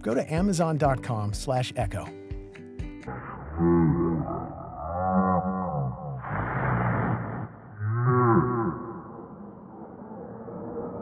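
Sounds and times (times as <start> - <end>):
man's low drawn-out moan: 3.1 - 6.6, 7.8 - 9.2.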